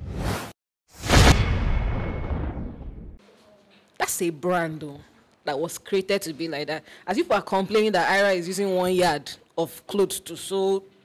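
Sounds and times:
whoosh sound effects: 0.0s - 3.1s.

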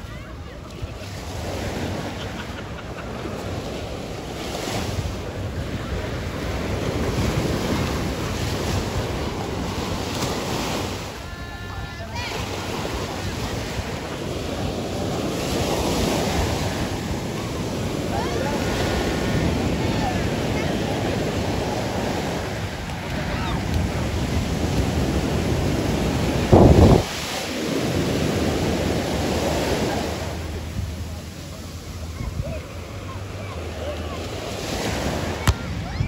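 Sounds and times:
small waves breaking on beach: 0.0s - 36.0s
wind rumbling on microphone: 3.8s - 33.2s, 35.1s - 36.0s.

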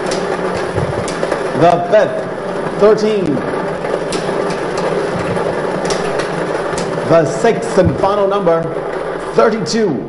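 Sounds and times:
balls rattling and clattering: 0.0s - 9.4s
lottery machine rushing: 0.0s - 10.0s.

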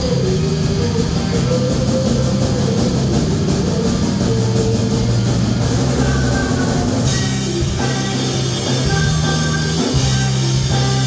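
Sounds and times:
bass line: 0.0s - 11.0s
drum kit with cymbals: 0.0s - 11.0s
electric guitars: 0.0s - 11.0s.

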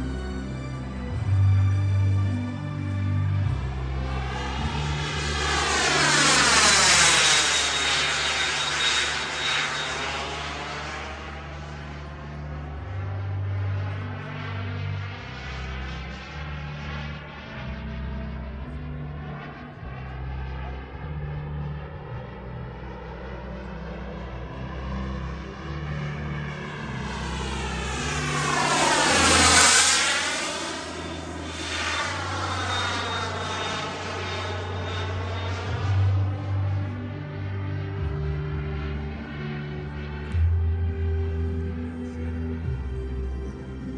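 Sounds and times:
high turbine whine: 0.0s - 43.9s
model jet passing: 2.4s - 40.7s.

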